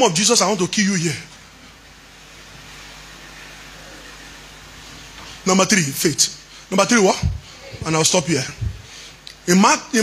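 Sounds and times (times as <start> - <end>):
background hiss: 0.0 - 10.0
faint low hum: 0.0 - 10.0.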